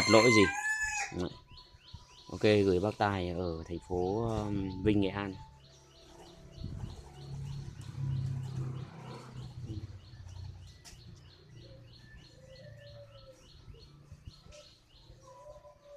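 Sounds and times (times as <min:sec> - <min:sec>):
small bird chirping: 0:01.2 - 0:15.9.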